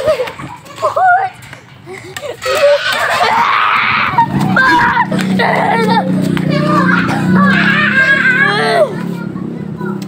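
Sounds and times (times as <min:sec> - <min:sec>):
young children's voices: 0:00.0 - 0:10.0.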